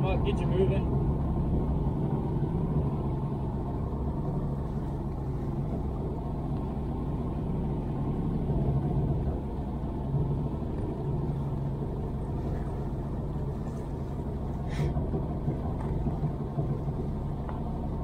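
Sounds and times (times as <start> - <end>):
boat motor rumbling: 0.0 - 18.0.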